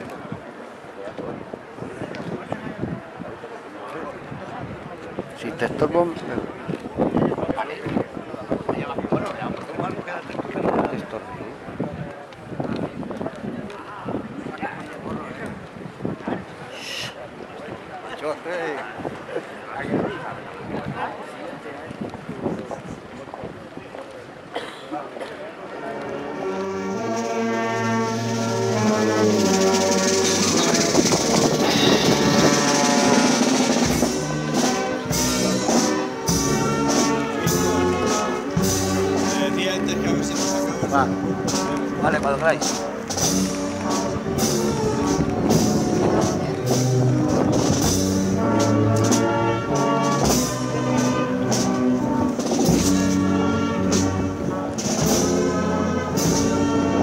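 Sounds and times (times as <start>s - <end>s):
brass band playing a slow march: 25.6s - 57.0s
drums keeping a steady beat: 26.4s - 57.0s.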